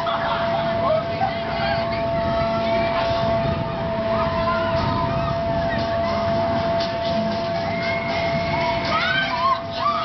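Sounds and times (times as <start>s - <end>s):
amusement ride mechanical whine: 0.0s - 10.0s
low rumble: 0.0s - 10.0s.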